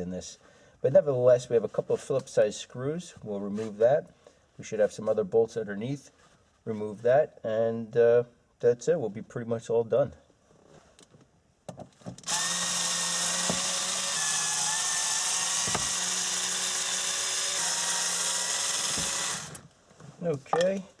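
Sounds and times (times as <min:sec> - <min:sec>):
cordless drill motor running: 0:12.2 - 0:19.7.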